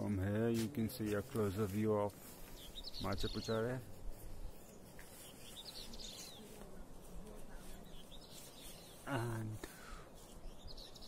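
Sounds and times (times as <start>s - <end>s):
outdoor background noise: 0.0s - 11.0s
small bird chirping: 2.4s - 11.0s.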